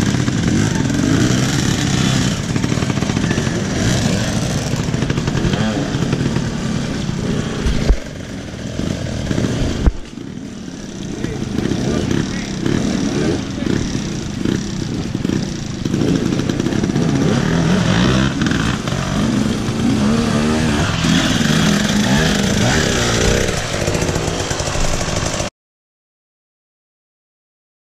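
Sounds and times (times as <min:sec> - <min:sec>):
motorcycle engine revving: 0:00.0 - 0:25.5.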